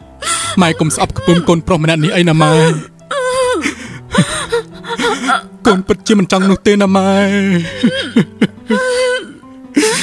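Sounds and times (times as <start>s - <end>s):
person sobbing: 0.2s - 6.0s, 7.4s - 10.0s
person speaking tearfully: 0.5s - 2.9s.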